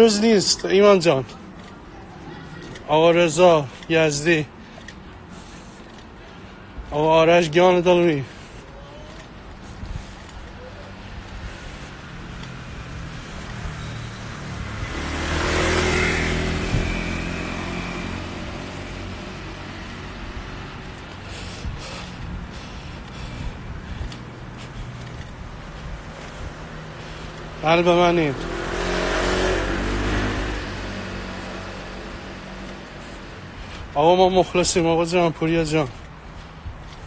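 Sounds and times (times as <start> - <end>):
car passing by: 11.0 - 22.1, 24.8 - 34.6.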